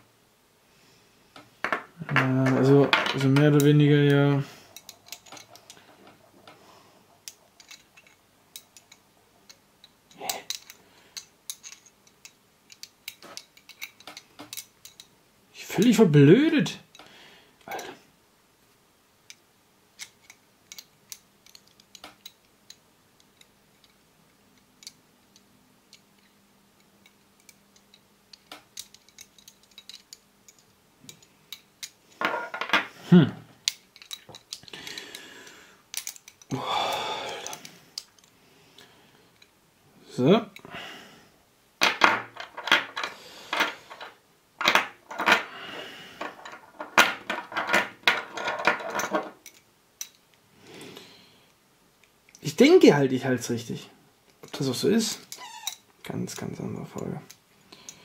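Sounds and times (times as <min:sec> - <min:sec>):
metal clinking and rattling: 0:01.6 - 0:15.1, 0:27.0 - 0:32.9, 0:33.6 - 0:35.2, 0:35.9 - 0:36.5, 0:46.2 - 0:50.2
metal puzzle pieces clicking: 0:04.7 - 0:06.6, 0:07.2 - 0:15.1, 0:20.0 - 0:24.0, 0:24.6 - 0:32.7, 0:33.6 - 0:35.2, 0:35.9 - 0:36.5, 0:46.2 - 0:50.3.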